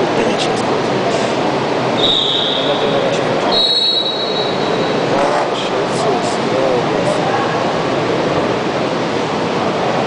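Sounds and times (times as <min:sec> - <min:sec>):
murmur of spectators: 0:00.0 - 0:10.0
referee's whistle blast: 0:02.0 - 0:02.8, 0:03.5 - 0:04.6.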